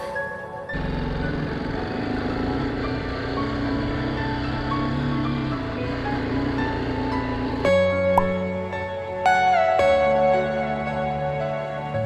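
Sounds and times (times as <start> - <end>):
background music: 0.0 - 12.0
motorcycle engine running: 0.7 - 8.7.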